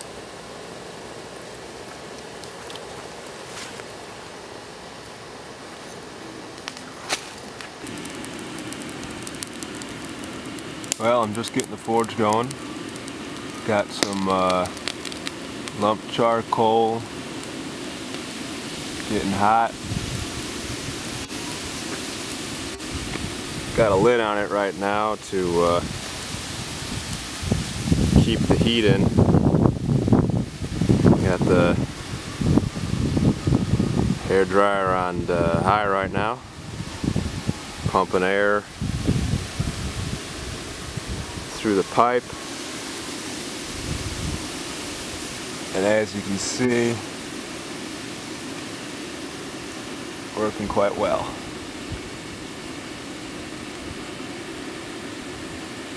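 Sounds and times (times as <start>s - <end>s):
charcoal popping and crackling: 0.0s - 34.8s, 36.3s - 55.9s
rush of air and fire: 0.0s - 55.9s.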